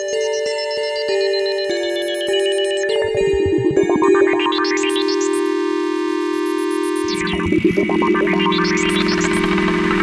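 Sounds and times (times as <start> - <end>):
low synthesizer drone: 2.8 - 10.0
quick rising synth notes: 3.0 - 5.2.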